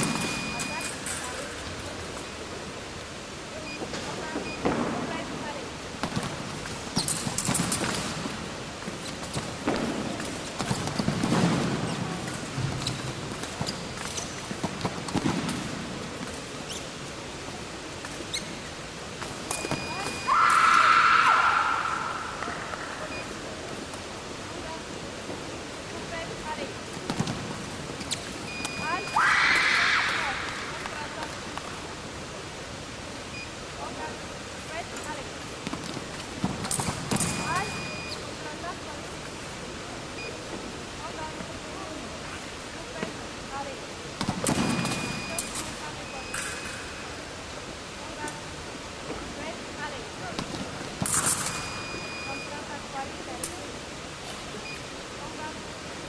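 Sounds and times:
steady hall hum: 0.0 - 56.0
steady high beep: 0.1 - 1.0, 37.3 - 38.2, 44.6 - 46.8, 51.4 - 52.7.

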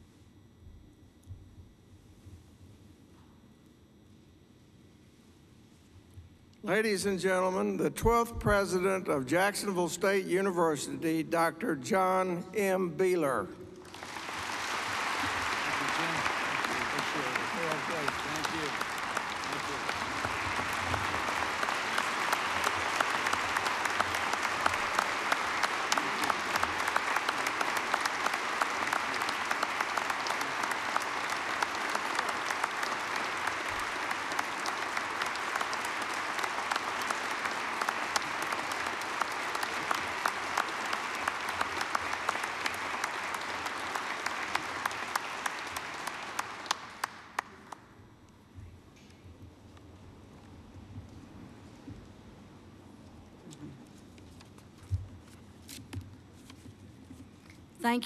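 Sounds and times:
large audience applauding: 13.8 - 48.0.

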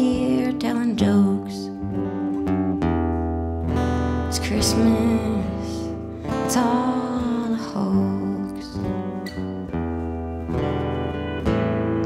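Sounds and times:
acoustic guitar strumming: 0.0 - 12.0
pedal steel guitar notes: 0.0 - 12.0.

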